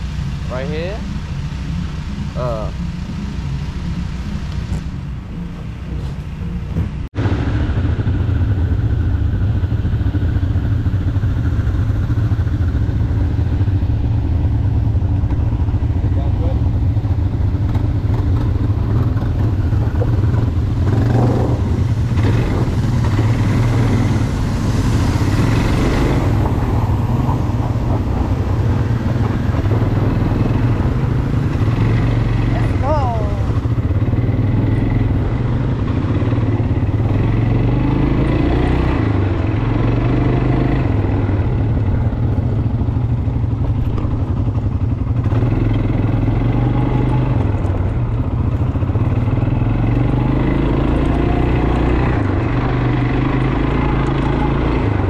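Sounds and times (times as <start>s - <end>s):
quad engine running: 0.0s - 55.0s.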